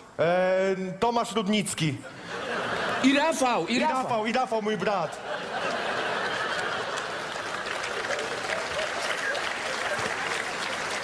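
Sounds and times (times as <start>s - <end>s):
audience applauding: 5.5s - 11.0s.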